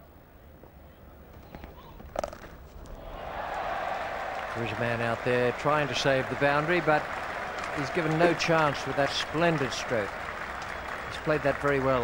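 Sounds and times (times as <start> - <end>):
faint crowd: 2.9 - 12.0.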